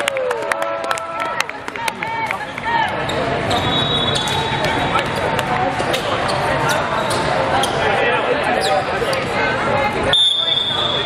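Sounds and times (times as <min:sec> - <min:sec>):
babble of many voices: 0:00.8 - 0:11.0
referee's whistle: 0:03.5 - 0:04.5, 0:10.1 - 0:11.0.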